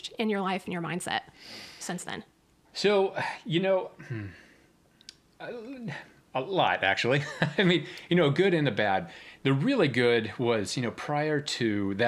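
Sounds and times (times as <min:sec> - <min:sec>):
man speaking: 0:02.7 - 0:04.4, 0:05.4 - 0:12.0.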